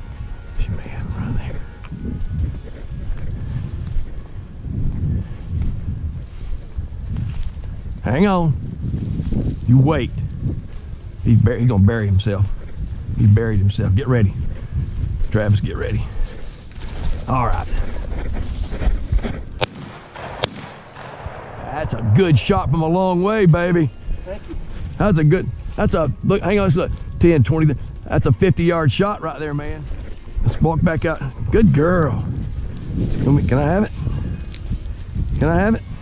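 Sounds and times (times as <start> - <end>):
dry grass rustling: 0.0 - 36.0
wind buffeting microphone: 0.0 - 36.0
distant shotgun shots: 19.6 - 22.6.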